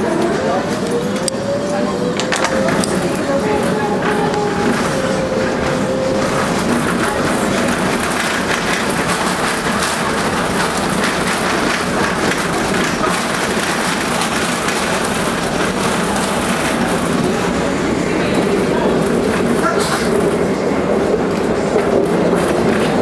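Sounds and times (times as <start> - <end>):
tram wheels rumbling on rails: 0.0 - 23.0.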